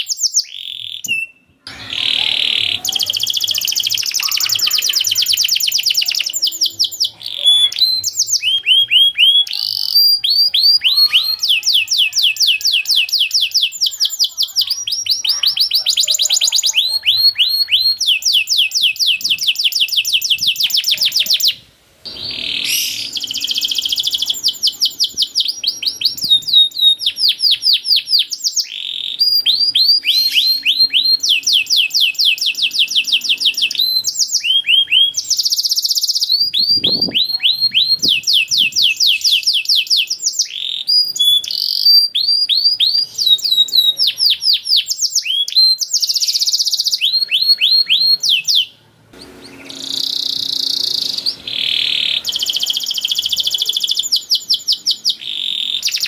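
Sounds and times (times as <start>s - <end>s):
canary singing: 0.0s - 56.0s.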